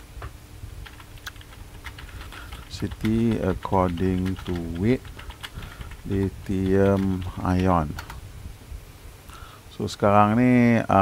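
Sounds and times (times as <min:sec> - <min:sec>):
computer keyboard typing: 0:00.8 - 0:08.2.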